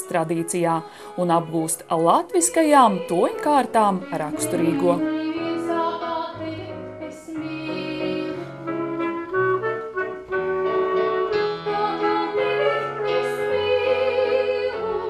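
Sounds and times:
clarinet melody: 0.0 - 15.0
piano accompaniment: 0.0 - 15.0.

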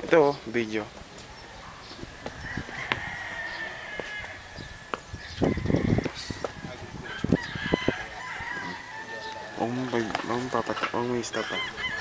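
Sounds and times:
rooster crowing: 2.1 - 9.7, 11.2 - 12.0.

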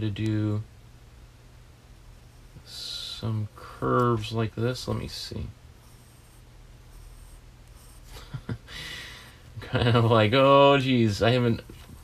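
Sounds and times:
pencil scratching on paper: 5.8 - 8.2.

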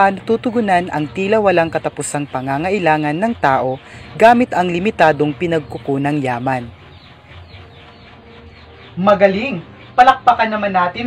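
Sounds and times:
drawn-out bird call: 0.0 - 10.5.

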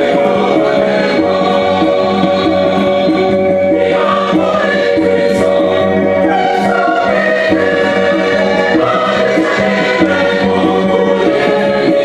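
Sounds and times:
gospel choir singing over beat: 0.0 - 12.0.

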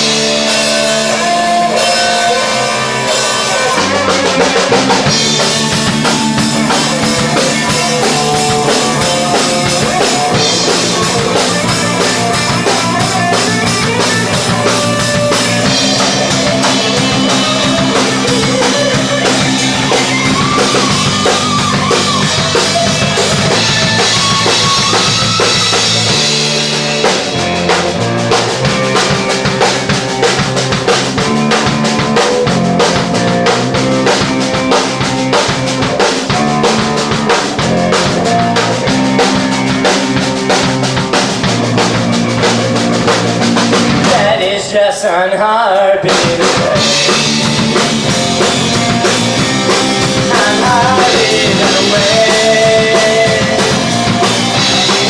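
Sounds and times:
electric bass: 0.0 - 44.8, 46.0 - 55.0
drum kit: 0.0 - 55.0
electric guitar: 0.0 - 55.0.

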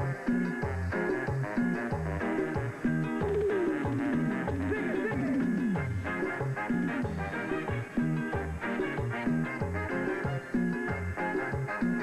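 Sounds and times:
bass: 0.0 - 12.0
drum kit: 0.0 - 12.0
saxophones playing: 0.0 - 12.0.

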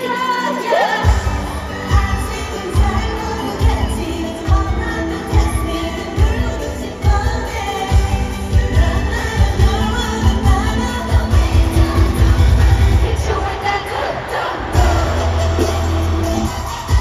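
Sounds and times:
female vocals: 0.0 - 15.8
pop music through stadium speakers: 0.0 - 17.0
pounding bass beat: 14.7 - 17.0.

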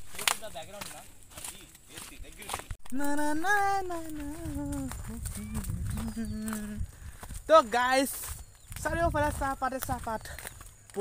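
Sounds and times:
man making wordless vocal calls: 2.8 - 6.9
wind rumble on microphone: 3.0 - 10.8.

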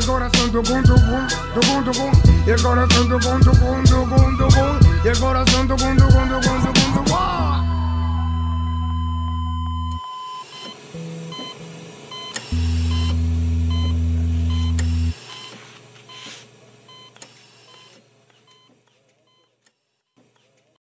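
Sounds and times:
loud deep drone: 0.0 - 9.8
heart monitor beeping: 8.3 - 16.3, 16.9 - 19.5.

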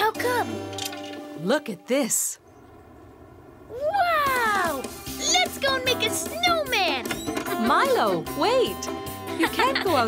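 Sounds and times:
child exclaiming with delight: 3.7 - 6.9.

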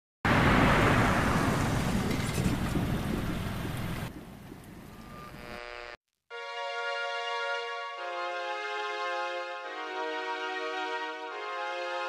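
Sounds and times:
rain and thunder-like noise: 0.3 - 5.1
sustained chord: 5.6 - 12.0
sped-up song: 6.3 - 12.0.

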